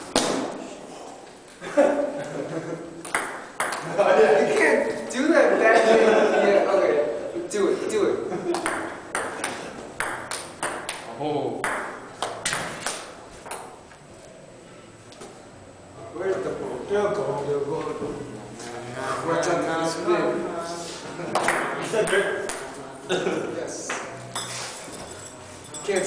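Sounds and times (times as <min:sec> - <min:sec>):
young man laughing uncontrollably: 0:01.6 - 0:03.0
ping-pong ball clicks: 0:03.0 - 0:03.9, 0:08.5 - 0:13.8.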